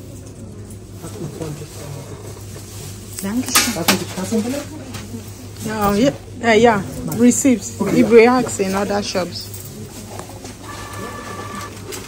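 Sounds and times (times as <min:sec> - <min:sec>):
receipt printer whine: 0:10.5 - 0:12.0.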